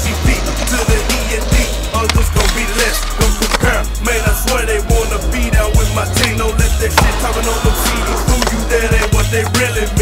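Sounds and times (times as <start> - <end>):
hip-hop music: 0.0 - 10.0
skateboard wheels rolling on concrete: 0.0 - 10.0
skateboard sharp cracks: 1.9 - 3.8
skateboard knocking on ledge: 6.2 - 7.3, 8.2 - 9.7.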